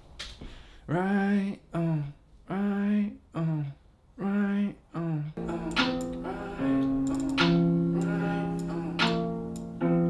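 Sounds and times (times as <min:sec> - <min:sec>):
plucked guitar-like beat loop: 0:05.7 - 0:09.8.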